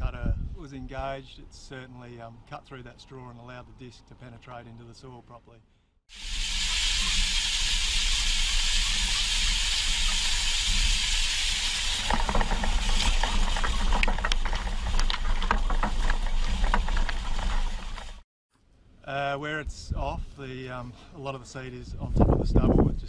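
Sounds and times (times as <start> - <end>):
water jet nozzle hissing: 6.1 - 13.8.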